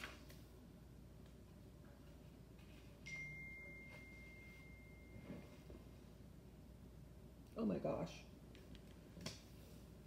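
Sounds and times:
phone notification ding: 0:03.1 - 0:05.6.

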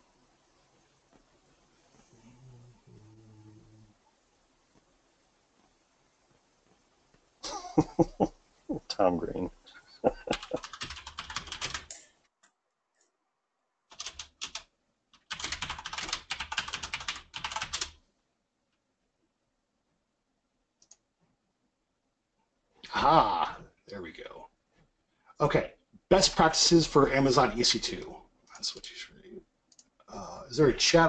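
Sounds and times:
person's breathy vocal outburst: 0:10.0 - 0:10.6.

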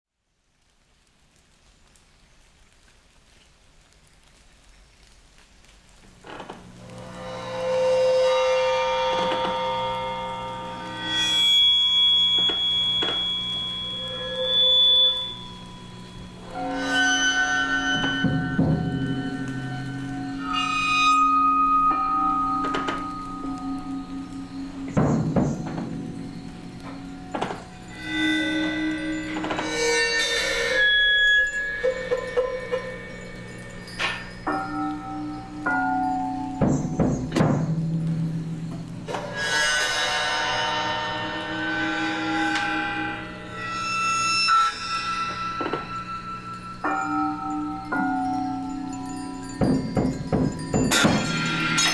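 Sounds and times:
bell-like ringing tones: 0:07.1 - 0:51.9
sharp percussion strikes: 0:07.2 - 0:51.9.

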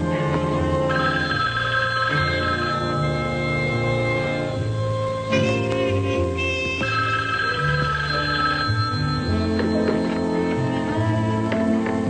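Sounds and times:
music of held notes: 0:00.0 - 0:12.0
telephone bell ringing: 0:00.9 - 0:04.2, 0:06.5 - 0:10.5.

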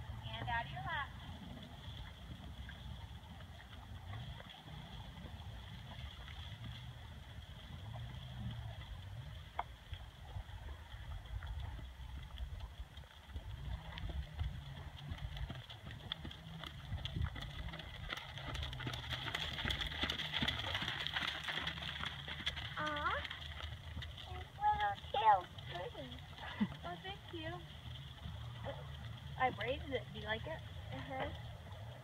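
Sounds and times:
hoofbeats on sand: 0:12.8 - 0:30.6.

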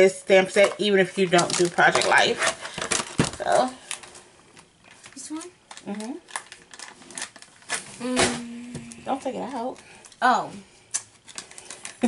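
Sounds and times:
packaging crinkling and rustling: 0:00.7 - 0:08.0, 0:10.9 - 0:12.0.

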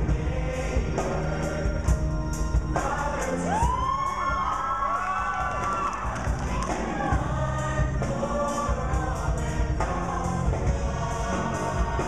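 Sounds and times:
choir singing with band: 0:00.0 - 0:12.0
audience cheering and whooping: 0:03.5 - 0:07.2.

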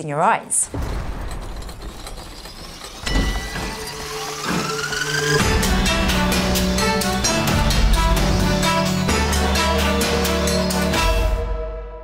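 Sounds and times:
turning gears: 0:00.7 - 0:09.0
rising tone: 0:01.9 - 0:11.4
theme music: 0:03.0 - 0:12.0.

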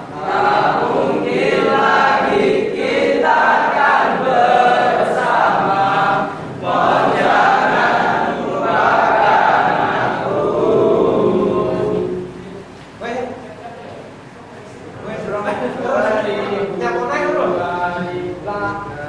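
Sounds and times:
group of people singing: 0:00.0 - 0:12.7.

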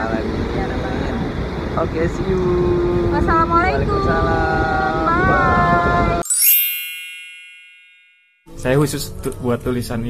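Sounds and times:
sparkling bell-like chime: 0:06.2 - 0:08.6.

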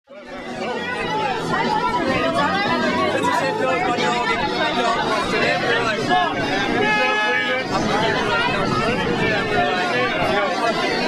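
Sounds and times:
overlapping chatter: 0:00.1 - 0:11.0.

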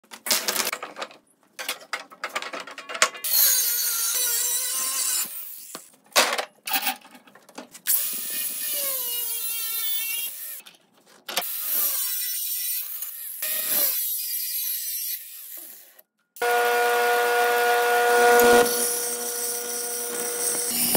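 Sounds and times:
metal clanks and clicks: 0:00.3 - 0:03.3
power grinder cutting steel: 0:07.9 - 0:10.6, 0:11.4 - 0:20.9.

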